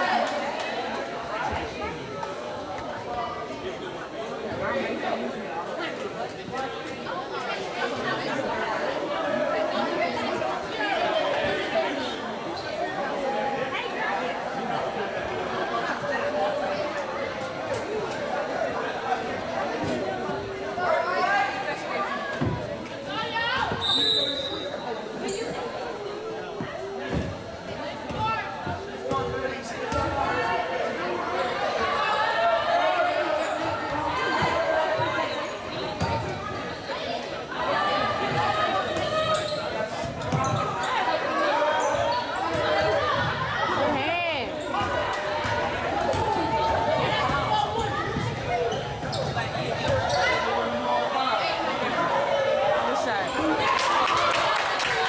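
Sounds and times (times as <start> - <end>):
babble of overlapping voices: 0.0 - 55.0.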